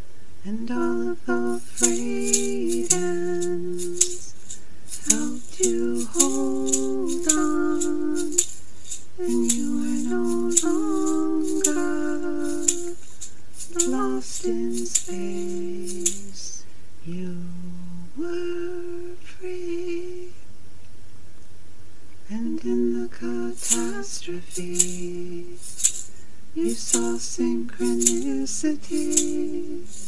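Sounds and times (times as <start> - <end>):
person humming: 0.5 - 4.4, 5.0 - 8.5, 9.2 - 13.0, 13.6 - 20.4
hand rattle shaking: 0.8 - 16.6, 23.3 - 30.0.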